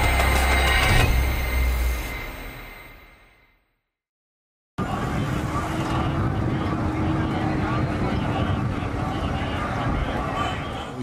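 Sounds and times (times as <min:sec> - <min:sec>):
low hum: 0:00.0 - 0:03.7
crowd of indistinct voices: 0:04.8 - 0:11.0
traffic noise: 0:04.8 - 0:11.0.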